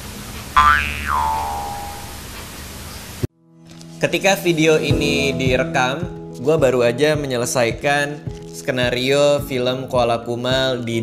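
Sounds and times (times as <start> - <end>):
comedy boing sound effect: 0.6 - 2.2.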